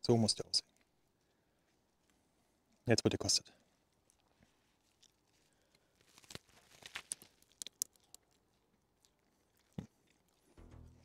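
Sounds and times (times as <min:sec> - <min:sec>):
person chewing a burger: 0:03.9 - 0:10.6
soft crunching and sharp clicks: 0:03.9 - 0:10.6.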